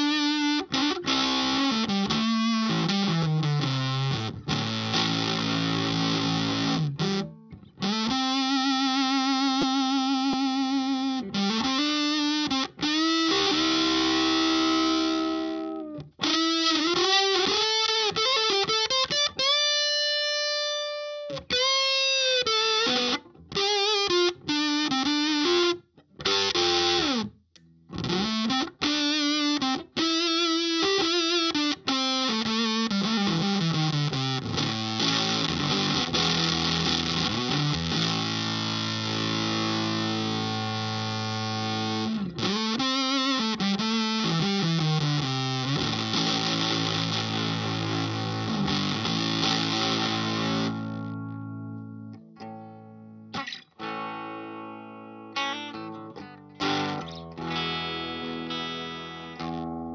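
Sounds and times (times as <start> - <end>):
fuzzed electric guitar: 0.0 - 59.9.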